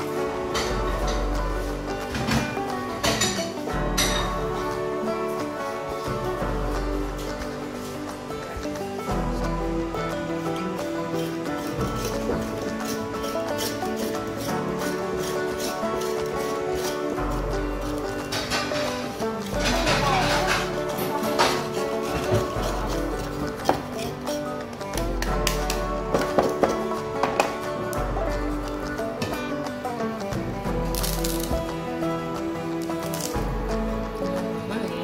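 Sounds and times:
background music with pulsing bass: 0:00.0 - 0:35.0.

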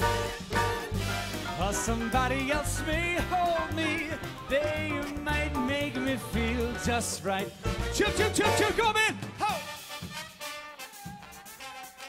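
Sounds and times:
swing big band playing: 0:00.0 - 0:12.0.

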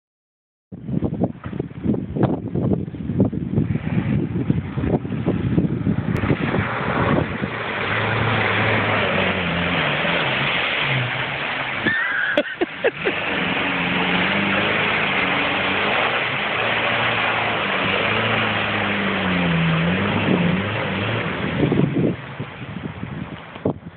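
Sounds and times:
churning splashing water: 0:03.7 - 0:23.7
car engine revving: 0:06.1 - 0:22.6.

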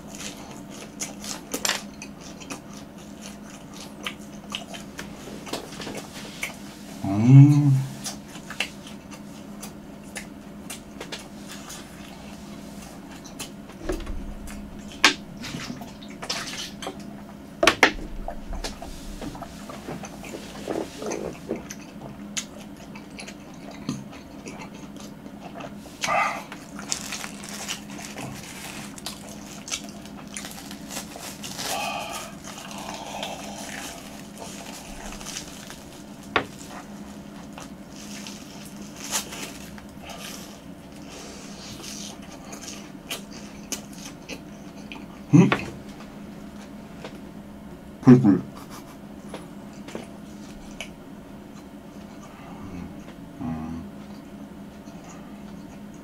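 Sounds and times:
biting and chewing crispy food: 0:00.0 - 0:06.7, 0:18.1 - 0:45.3
crust crackling: 0:25.8 - 0:42.2
swallowing: 0:31.6 - 0:37.0.

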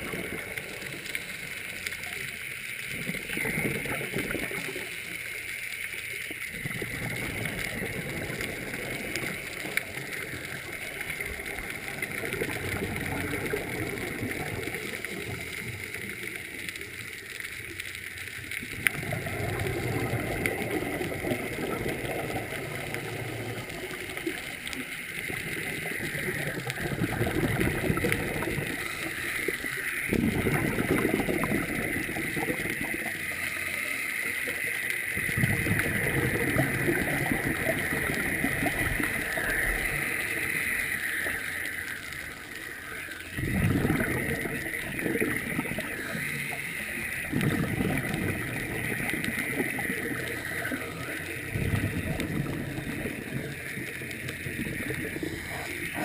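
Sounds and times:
diver exhaling bubbles underwater: 0:00.0 - 0:01.5, 0:02.8 - 0:05.0, 0:06.5 - 0:16.5, 0:18.6 - 0:56.0.

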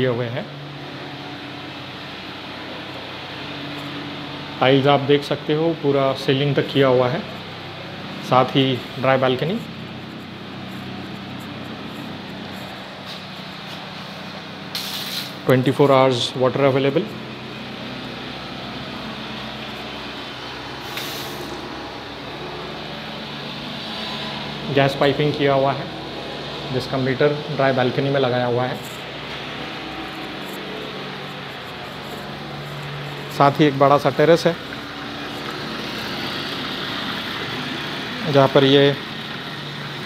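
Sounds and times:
road traffic: 0:00.0 - 0:40.0
brief hiss: 0:14.7 - 0:15.4, 0:20.8 - 0:21.6.

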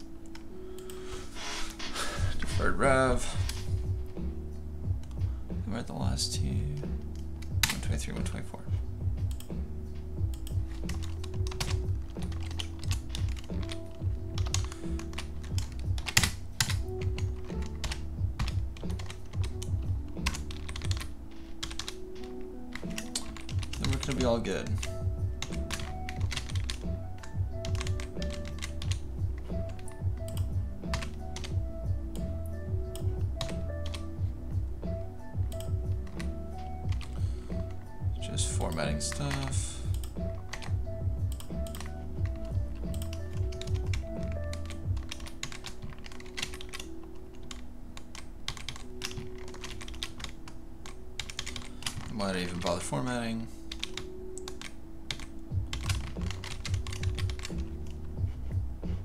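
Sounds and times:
background music: 0:00.0 - 0:59.0
keyboard typing: 0:09.2 - 0:34.2, 0:34.9 - 0:52.8, 0:53.6 - 0:58.4.

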